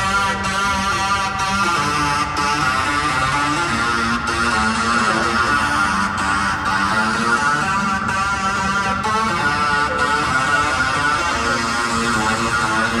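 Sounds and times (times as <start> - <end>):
guitar music: 0.0 - 13.0.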